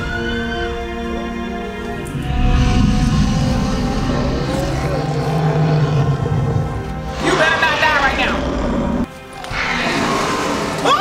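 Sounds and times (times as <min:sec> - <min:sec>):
low music drone: 0:00.0 - 0:11.0
creature crying out: 0:09.6 - 0:11.0.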